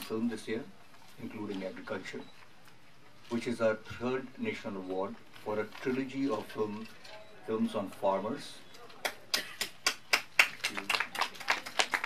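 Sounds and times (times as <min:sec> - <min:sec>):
people clapping: 0:09.0 - 0:12.0.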